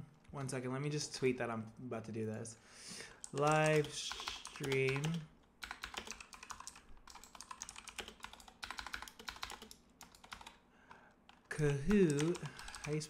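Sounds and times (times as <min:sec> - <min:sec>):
fast typing on keyboard: 0:03.2 - 0:13.0.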